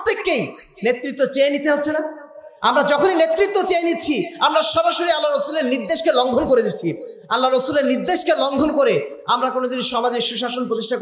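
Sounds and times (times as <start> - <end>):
man lecturing into a microphone: 0.0 - 11.0.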